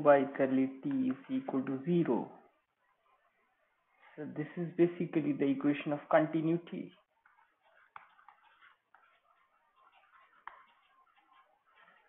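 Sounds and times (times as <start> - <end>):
stylus scratching on pen tablet: 0.5 - 4.2, 6.8 - 12.0.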